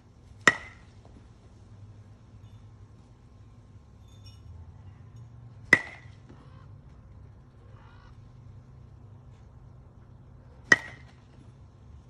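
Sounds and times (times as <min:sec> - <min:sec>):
baseball bat cracking ball: 0:00.3 - 0:01.1, 0:05.6 - 0:06.4, 0:10.6 - 0:11.5.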